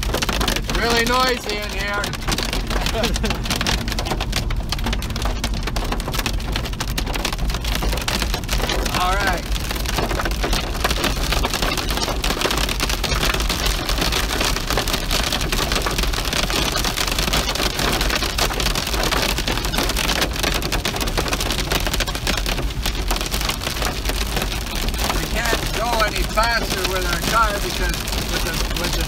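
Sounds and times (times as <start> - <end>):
heavy rain on car roof: 0.0 - 29.0.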